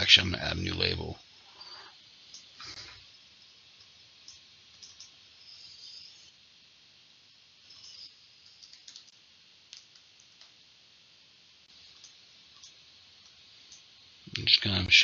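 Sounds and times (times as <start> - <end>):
computer mouse clicks: 4.2 - 5.2, 7.7 - 10.6, 11.9 - 13.9
laptop keyboard typing: 4.2 - 5.2, 7.8 - 10.6.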